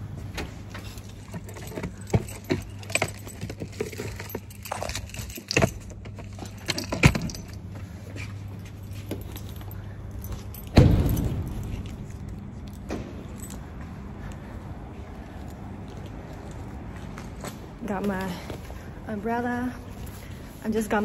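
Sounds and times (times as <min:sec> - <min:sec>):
steady low hum: 0:00.0 - 0:21.0
small things rattling: 0:00.5 - 0:13.7
keys jangling: 0:00.6 - 0:18.6.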